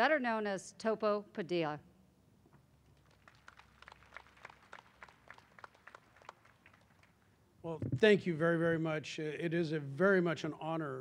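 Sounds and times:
sparse hand-clapping: 3.0s - 7.2s.

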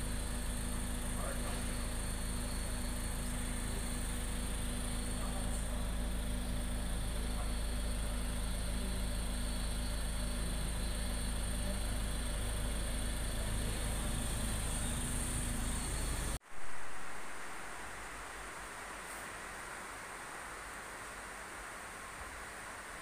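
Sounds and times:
car engine idling: 0.0s - 16.4s.

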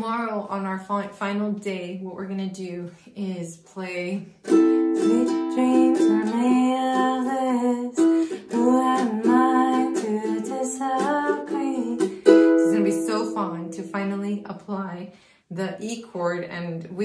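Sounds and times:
ukulele strummed: 4.4s - 13.9s.

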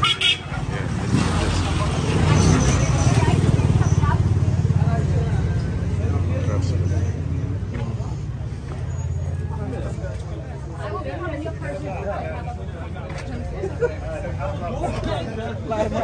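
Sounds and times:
voices of passers-by: 0.0s - 16.0s.

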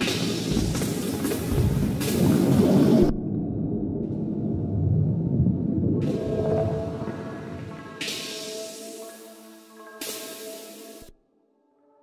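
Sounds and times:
dense low rumbling texture: 0.5s - 8.0s.

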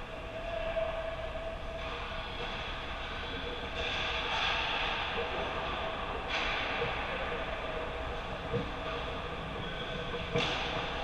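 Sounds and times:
arena noise hum: 0.0s - 11.0s.

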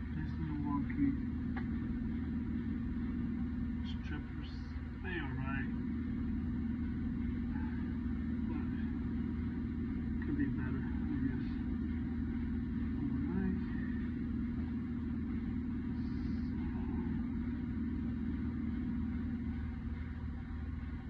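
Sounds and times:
machinery humming: 0.0s - 21.0s.

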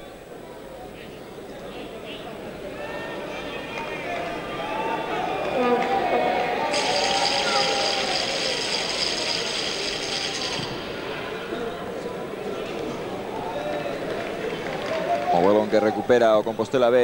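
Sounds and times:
crowd shouting and calling: 2.3s - 16.6s.

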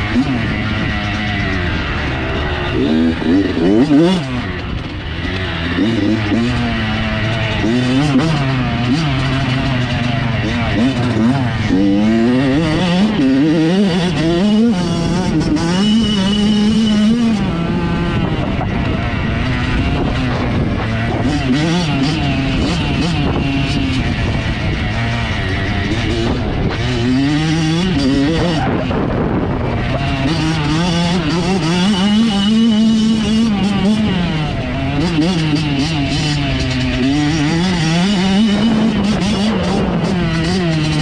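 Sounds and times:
dirt bike engine revving: 0.0s - 41.0s
wind noise: 0.0s - 41.0s.

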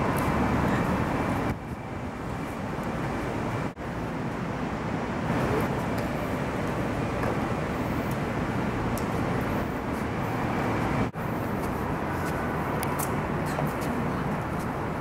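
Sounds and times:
traffic rumbling: 0.0s - 15.0s.

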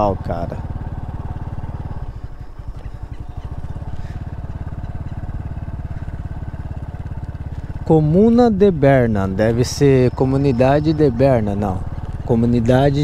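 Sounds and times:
motorcycle engine puttering: 0.0s - 13.0s.

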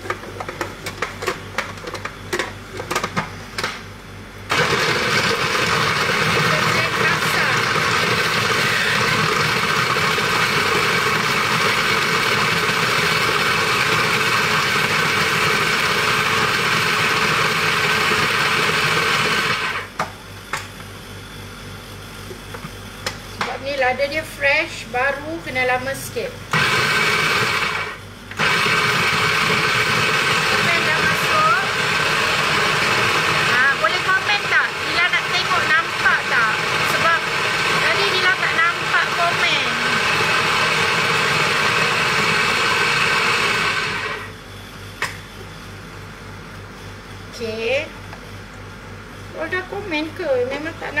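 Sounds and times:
electric blender grinding: 4.5s - 19.9s, 26.5s - 44.4s.

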